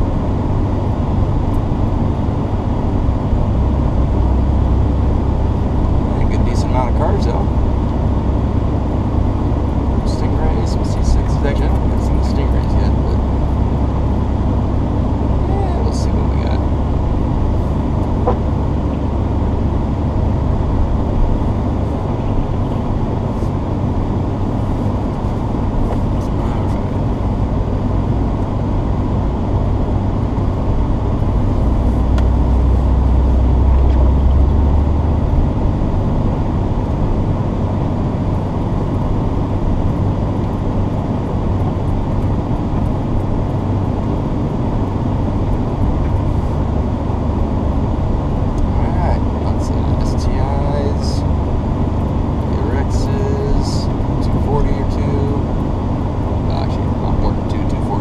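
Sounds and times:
car engine and tyres droning: 0:00.0 - 0:58.0.

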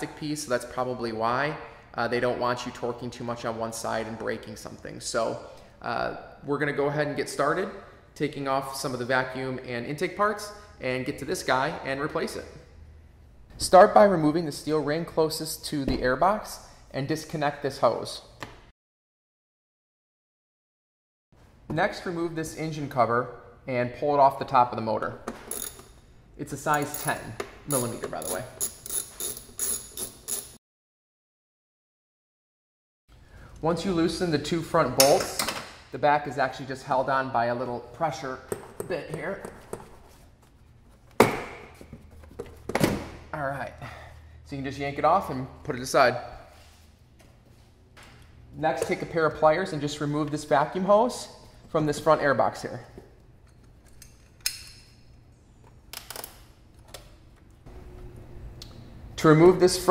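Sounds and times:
socket ratchet clicking: 0:27.0 - 0:30.6.

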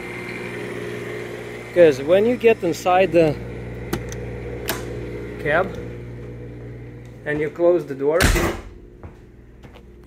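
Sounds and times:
generator humming: 0:00.0 - 0:10.0.

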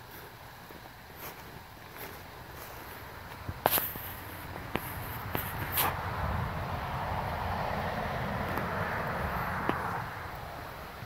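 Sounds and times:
leaves crackling underfoot: 0:00.0 - 0:07.3
steady rushing noise: 0:01.0 - 0:11.0.

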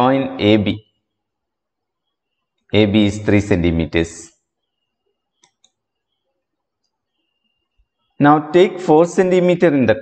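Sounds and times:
faint quick clicks: 0:05.4 - 0:05.8.

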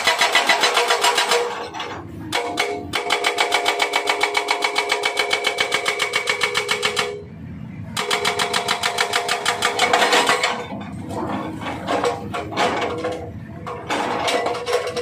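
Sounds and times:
hydraulic rock breaker hammering: 0:00.0 - 0:07.3, 0:08.0 - 0:15.0.

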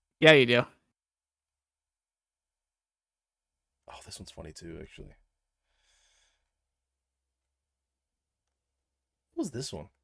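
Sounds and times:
faint exhaled breath: 0:05.6 - 0:06.5.

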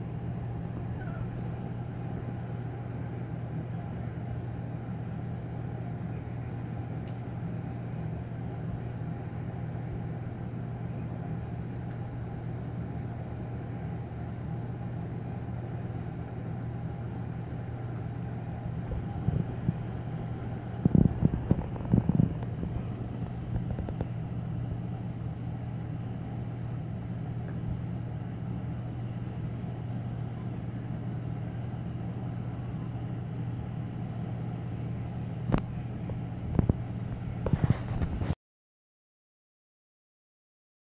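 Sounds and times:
low room hum: 0:00.0 - 0:38.4.

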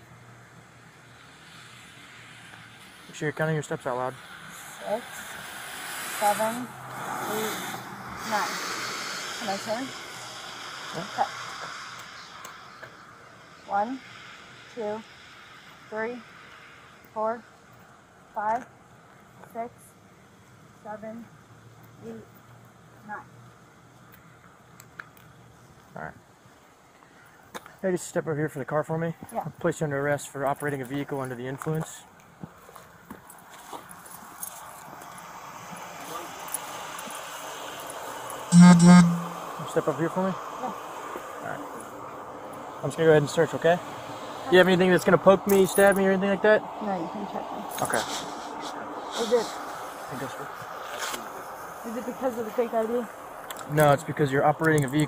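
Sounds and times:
steady outdoor hiss: 0:00.0 - 0:55.0
person speaking: 0:38.5 - 0:39.5.

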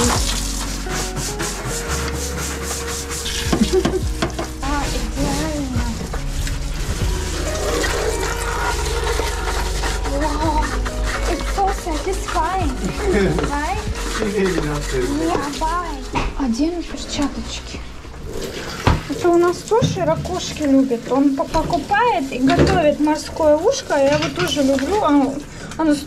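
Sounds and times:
brush scrubbing hard plastic: 0:00.0 - 0:17.4, 0:18.2 - 0:26.0.

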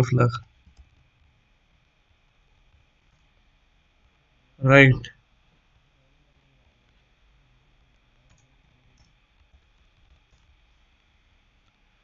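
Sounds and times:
computer keyboard keystrokes: 0:08.3 - 0:09.2.

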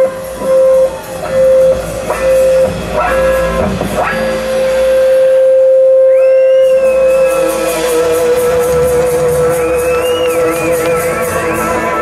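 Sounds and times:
amplified electric guitar: 0:00.0 - 0:12.0.

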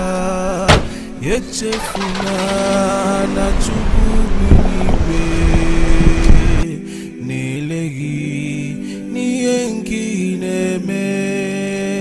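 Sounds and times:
background music: 0:00.0 - 0:12.0
tyres on dirt: 0:00.5 - 0:06.6
car engine driving off: 0:00.7 - 0:06.6.

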